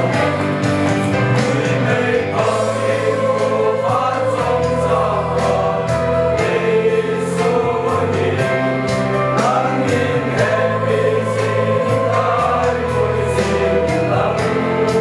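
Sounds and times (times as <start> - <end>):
choir singing a hymn: 0.0 - 15.0.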